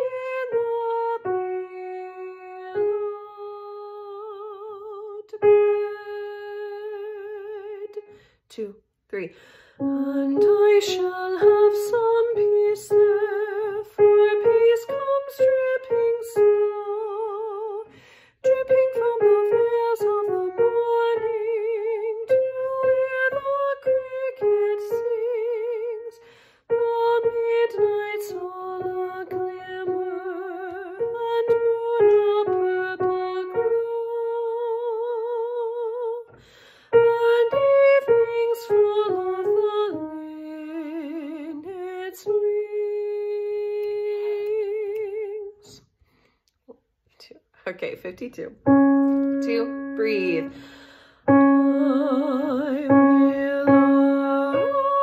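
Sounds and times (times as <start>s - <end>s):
woman singing unaccompanied: 0.0s - 8.1s, 9.2s - 45.8s, 51.3s - 55.0s
woman breathing in: 8.1s - 8.5s, 9.3s - 9.9s, 17.9s - 18.4s, 26.2s - 26.7s, 36.4s - 37.0s, 45.9s - 46.6s, 50.5s - 51.3s.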